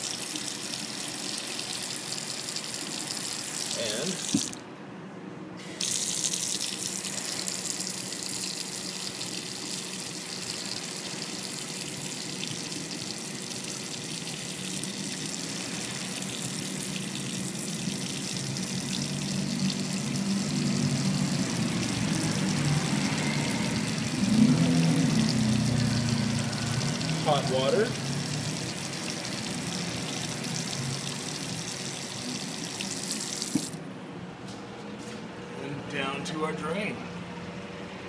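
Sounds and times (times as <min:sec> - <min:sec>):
tap water running into sink: 0:00.0 - 0:04.6, 0:05.8 - 0:33.8.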